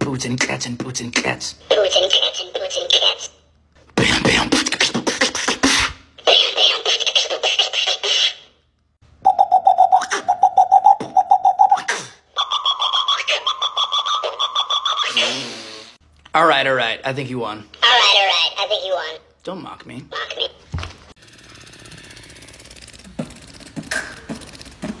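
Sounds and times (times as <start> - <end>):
person beatboxing: 4.0 - 8.4
toy playing back tinny voice: 20.1 - 20.6.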